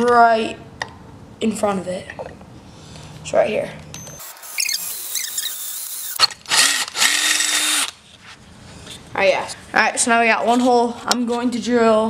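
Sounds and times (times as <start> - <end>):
cordless drill boring metal: 4.0 - 8.0.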